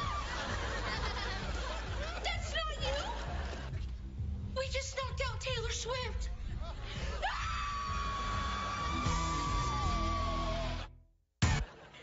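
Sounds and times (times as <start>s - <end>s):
people screaming: 7.0s - 10.9s.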